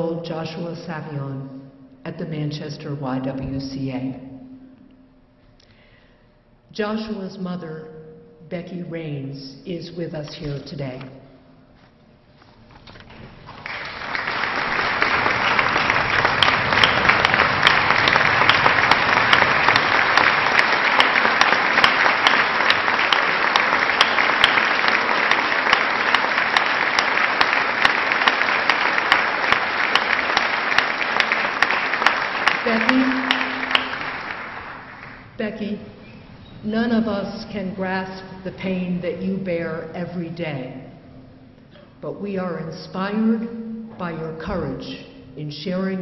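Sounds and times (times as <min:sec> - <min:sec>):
large audience applauding: 0:13.0 - 0:35.4.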